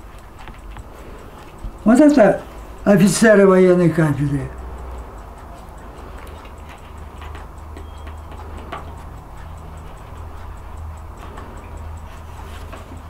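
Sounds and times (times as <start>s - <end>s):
clock ticking: 0.0s - 13.0s
low steady hum: 0.0s - 13.0s.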